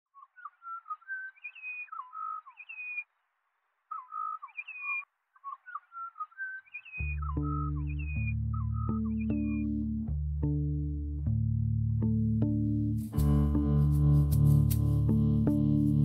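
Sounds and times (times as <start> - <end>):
bird singing whistled phrases: 0.2 - 3.0, 3.9 - 9.7
sustained bass and guitar notes: 7.0 - 16.0.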